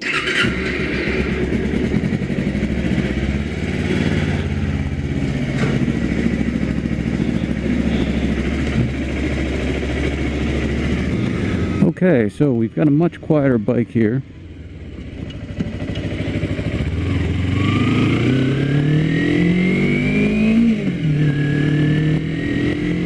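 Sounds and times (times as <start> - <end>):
motorcycle engine starting and idling: 0.0 - 23.0.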